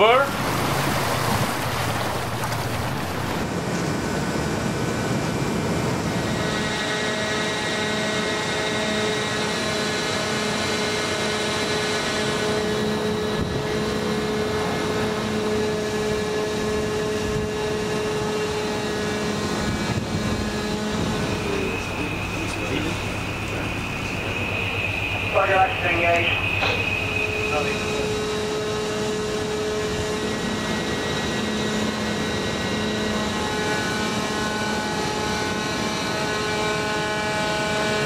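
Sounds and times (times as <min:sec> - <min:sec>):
constant whining tone: 0:00.0 - 0:03.5, 0:12.0 - 0:38.0
ship machinery drone: 0:00.0 - 0:38.0.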